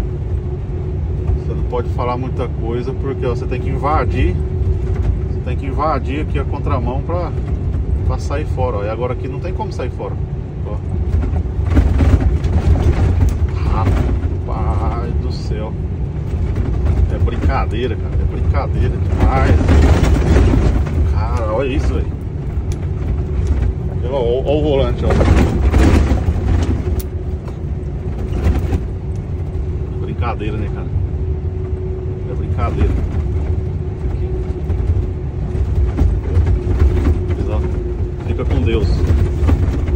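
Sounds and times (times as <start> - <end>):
steady hum: 0.0 - 39.9
truck engine and road rumble: 0.0 - 39.9
truck rattling and jolting: 0.8 - 39.9.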